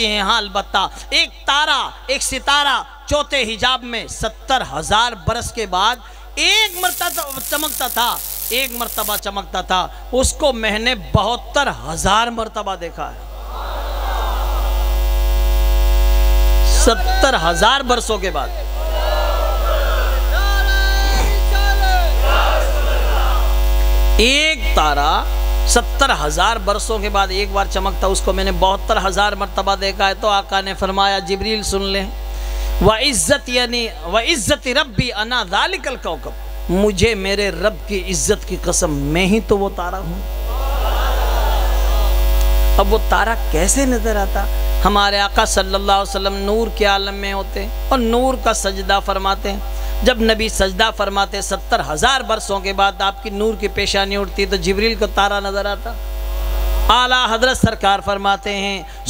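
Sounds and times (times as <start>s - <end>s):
echoing voice: 0.0s - 13.3s, 16.6s - 23.6s, 24.2s - 42.2s, 42.8s - 56.0s, 56.8s - 59.0s
mains hum from loudspeakers: 0.0s - 59.0s.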